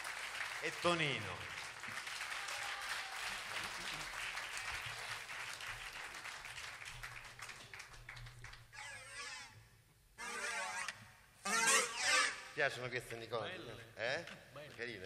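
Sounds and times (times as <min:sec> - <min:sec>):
audience applauding: 0:00.0 - 0:08.7.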